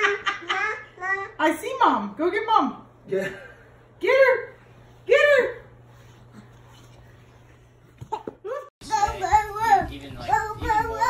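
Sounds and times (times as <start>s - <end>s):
child sing-song voice: 8.8s - 11.0s.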